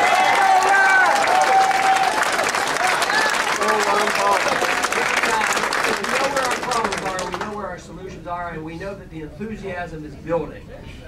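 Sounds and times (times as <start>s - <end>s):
people shouting: 0.0s - 2.2s
crowd clapping and cheering: 0.0s - 7.6s.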